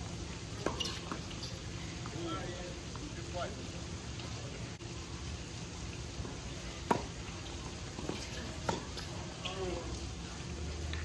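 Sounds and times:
tennis ball struck by racket: 0:00.6 - 0:01.3, 0:06.8 - 0:07.2, 0:08.0 - 0:09.1.

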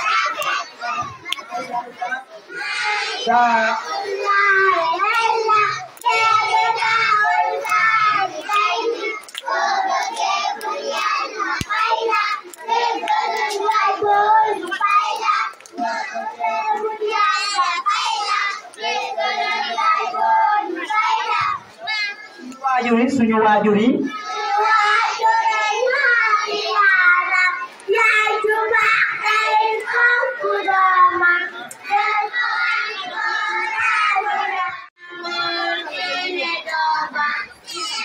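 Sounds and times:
children singing: 0:00.0 - 0:22.6, 0:24.1 - 0:38.0
hand claps: 0:01.3 - 0:01.5, 0:07.6 - 0:13.9, 0:14.6 - 0:15.8.

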